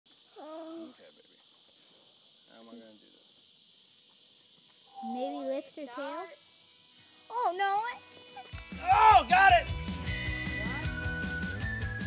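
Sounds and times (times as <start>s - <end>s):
steady high hiss: 0.1s - 12.0s.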